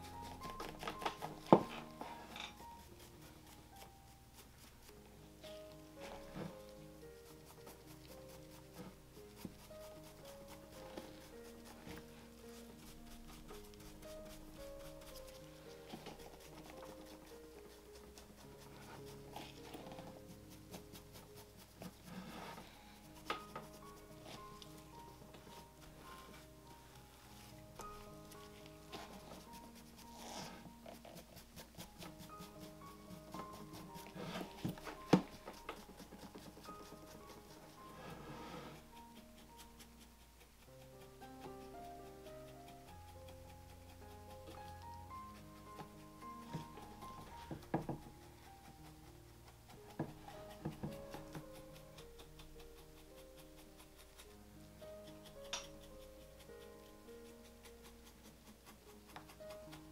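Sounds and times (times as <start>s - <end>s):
soft background music: 0.0s - 59.9s
applicator tapping and rubbing leather: 27.8s - 37.6s, 42.5s - 49.0s, 49.6s - 54.3s.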